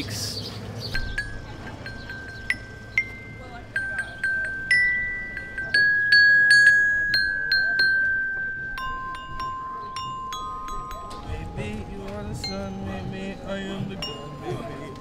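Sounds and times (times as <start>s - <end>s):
glockenspiel notes: 1.0s - 15.0s.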